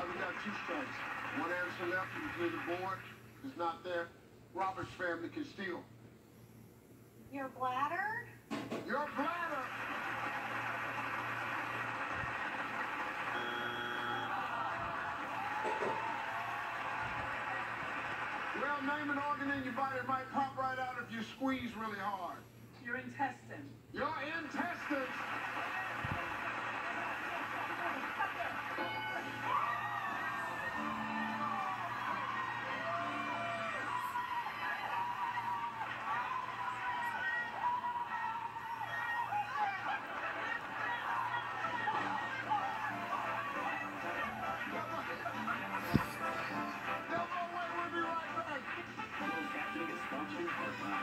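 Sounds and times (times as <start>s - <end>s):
audience applauding: 0.0s - 3.3s, 8.9s - 19.6s, 24.4s - 51.0s
crowd shouting and whooping: 10.0s - 18.5s, 25.4s - 46.6s
brief electronic tone: 13.4s - 14.3s.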